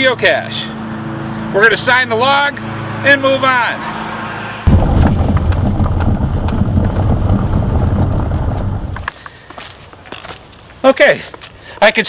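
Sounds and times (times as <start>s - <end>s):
outdoor noise: 0.0s - 12.0s
loud low rumbling: 4.6s - 9.1s.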